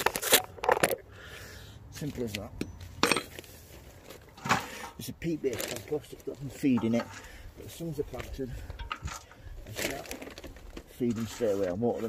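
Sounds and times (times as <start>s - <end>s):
compost pattering on metal: 3.2s - 12.0s.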